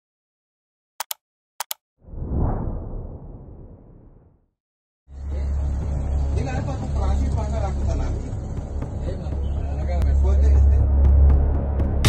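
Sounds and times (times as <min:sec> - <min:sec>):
mouse double clicks: 0:01.0 - 0:01.8.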